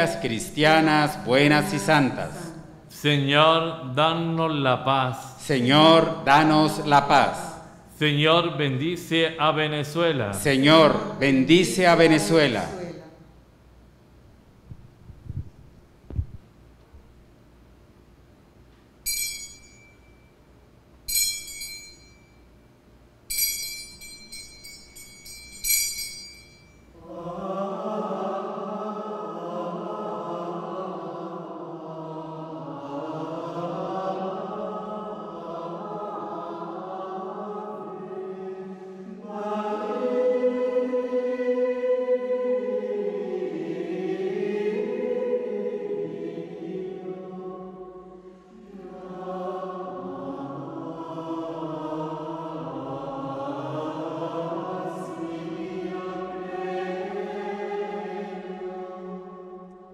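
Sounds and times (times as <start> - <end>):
choir singing a hymn: 0.0 - 13.3, 26.9 - 59.9
slow sung chant: 0.0 - 13.3, 26.8 - 59.9
small metal altar bells ringing: 19.0 - 20.3, 21.1 - 22.5, 23.3 - 27.0.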